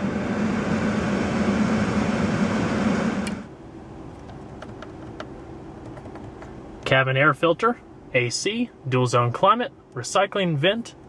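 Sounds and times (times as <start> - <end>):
car blower fan hissing: 0.0 - 11.0.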